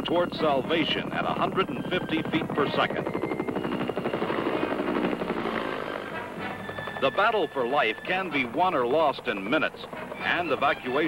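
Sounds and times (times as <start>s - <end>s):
helicopter rotor blades beating: 0.0s - 11.0s.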